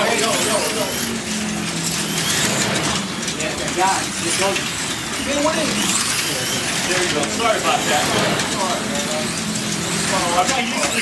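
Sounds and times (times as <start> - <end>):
slot cars clattering: 0.0 - 11.0
small electric motors whining: 0.0 - 11.0.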